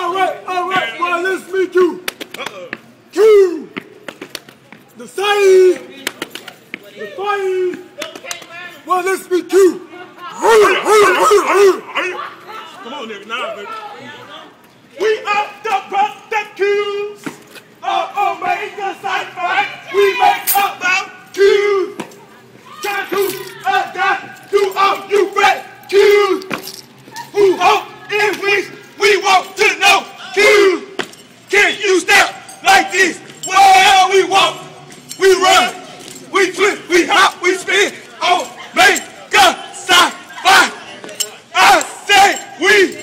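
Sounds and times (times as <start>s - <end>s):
men shouting rhythmic calls: 0.0s - 4.0s, 7.0s - 8.0s, 8.8s - 13.8s, 14.9s - 43.0s.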